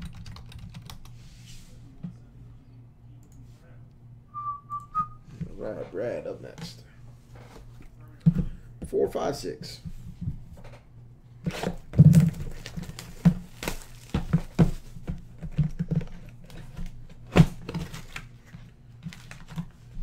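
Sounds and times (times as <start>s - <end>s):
plastic wrap crinkling and tearing: 11.5s - 14.6s.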